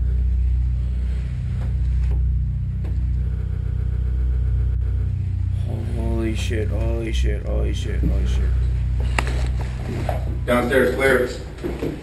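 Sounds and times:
low droning hum: 0.0 - 12.0.

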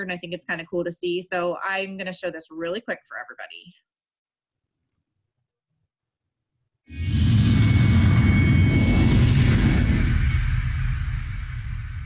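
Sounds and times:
loud low rumble: 7.1 - 12.0.

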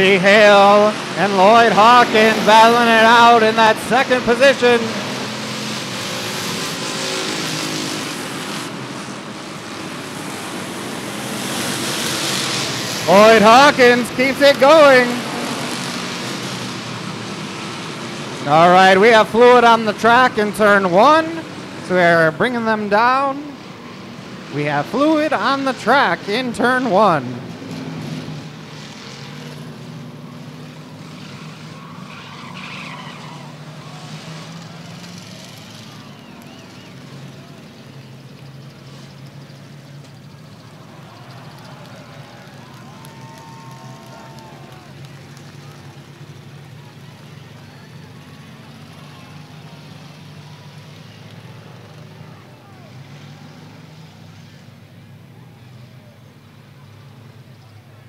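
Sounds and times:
race car engines idling: 0.0 - 58.0
faint voices: 30.3 - 53.8.

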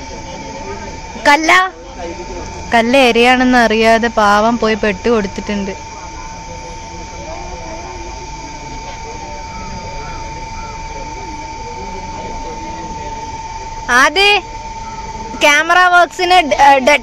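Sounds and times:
faint distant voices: 0.0 - 17.0
thin high whine: 0.0 - 17.0.

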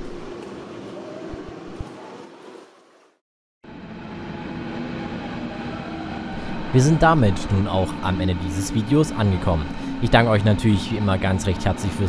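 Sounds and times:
electric train approaching: 3.6 - 12.0.

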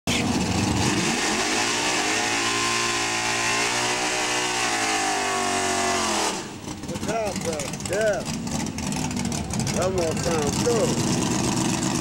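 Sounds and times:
car engine revving high: 0.1 - 12.0.

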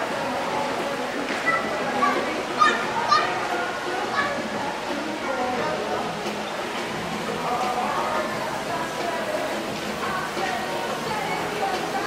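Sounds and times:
people talking: 0.0 - 6.6
children calling out: 1.2 - 6.0.

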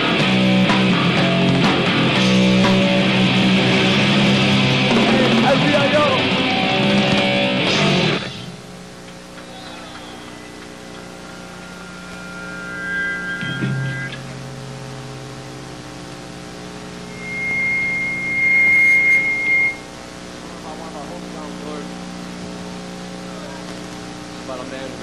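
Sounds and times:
amplifiers humming: 0.0 - 25.0
high steady held tone: 9.4 - 14.5, 17.0 - 20.1.

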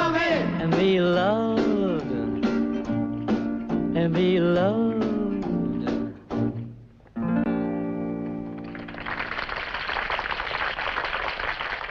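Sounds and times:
crowd clapping and applauding: 8.6 - 11.9.

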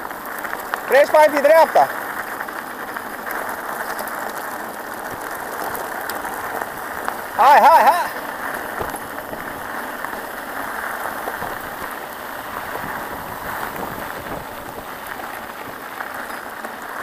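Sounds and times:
bike tyres rolling on gravel: 0.0 - 17.0
wind on microphone: 11.2 - 15.8.

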